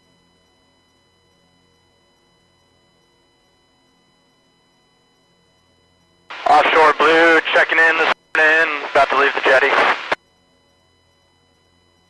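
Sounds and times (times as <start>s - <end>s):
faint electrical hum: 6.3s - 10.2s
thin whine: 6.3s - 10.2s
two-way radio voice transmission: 6.3s - 10.2s.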